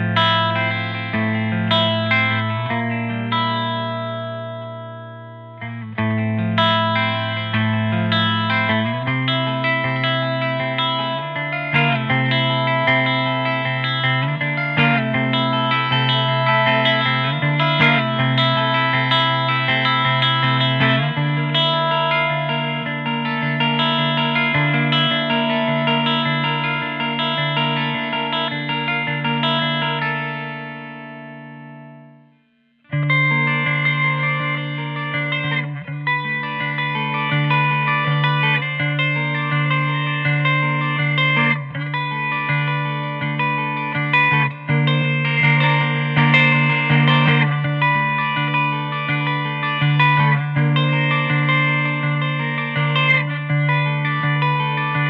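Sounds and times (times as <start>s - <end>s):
electric mandolin picked melody: 0.0s - 55.0s.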